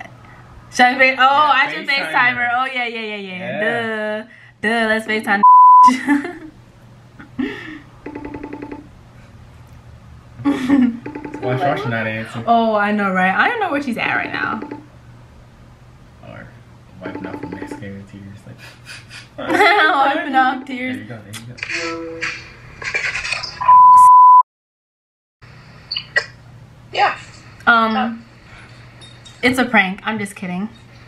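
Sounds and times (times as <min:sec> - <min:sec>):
high-pitched censor beep: 0:05.4 - 0:05.9, 0:23.7 - 0:24.4
warbling phone ringing tone: 0:08.0 - 0:08.9, 0:11.0 - 0:12.0, 0:14.3 - 0:14.9, 0:17.0 - 0:17.9
person talking: 0:11.4 - 0:12.6.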